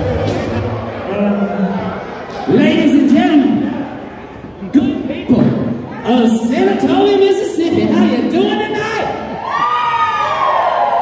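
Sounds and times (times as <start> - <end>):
crowd noise in a hall: 0.0 - 11.0.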